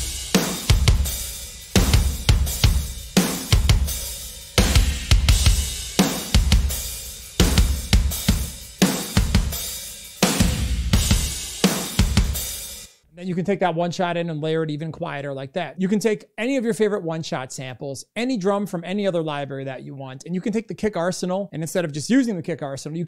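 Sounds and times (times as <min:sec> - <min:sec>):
heavy kick drum hits: 0:00.0 - 0:01.2, 0:01.8 - 0:04.0, 0:04.6 - 0:06.7, 0:10.4 - 0:12.4
drum kit groove: 0:00.0 - 0:13.0.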